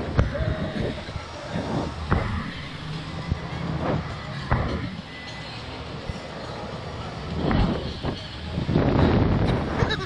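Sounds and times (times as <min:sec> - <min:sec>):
air rushing over microphone: 0:00.0 - 0:05.1.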